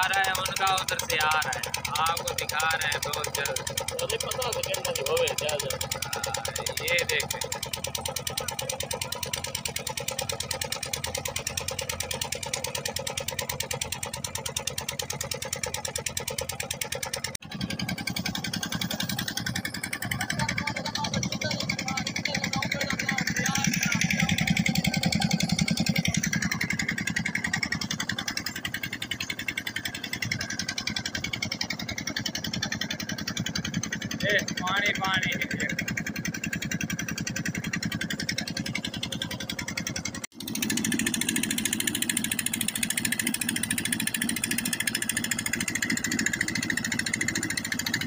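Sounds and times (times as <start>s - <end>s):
boat engine running: 0.0s - 48.0s.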